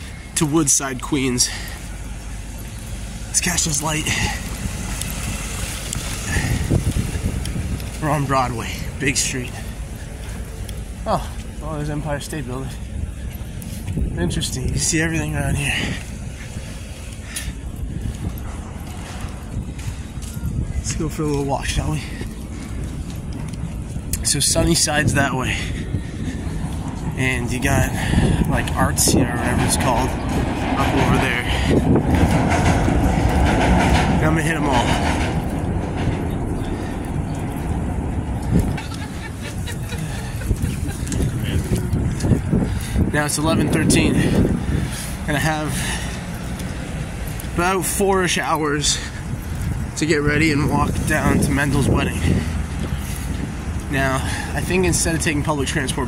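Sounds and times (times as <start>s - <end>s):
traffic rumble: 0.0s - 56.0s
wind buffeting microphone: 0.0s - 56.0s.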